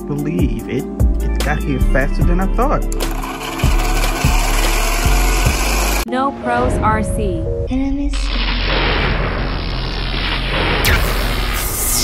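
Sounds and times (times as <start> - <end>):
toy truck wheel grinding whir: 2.9 - 6.0
background music with thumps: 8.6 - 12.0.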